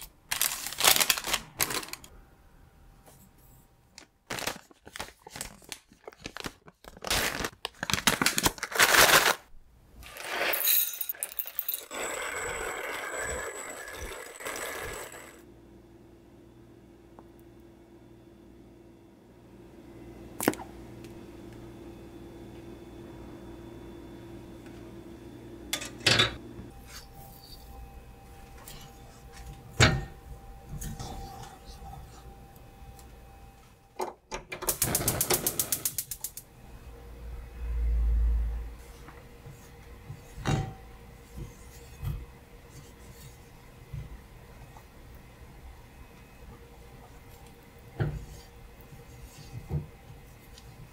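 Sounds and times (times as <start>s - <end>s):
manual coffee grinder grinding: 10.0s - 15.4s.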